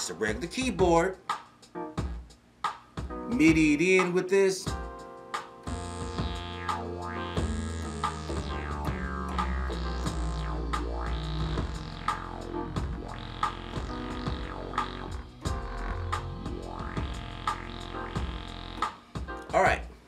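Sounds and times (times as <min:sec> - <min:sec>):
low synth bass notes: 0:05.7 - 0:18.9
short sharp synth hits: 0:05.7 - 0:18.9
sweeping synth tones: 0:05.8 - 0:18.8.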